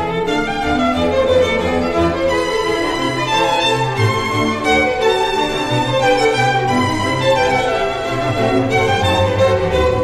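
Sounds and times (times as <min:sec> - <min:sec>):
bowed strings music: 0:00.0 - 0:10.0.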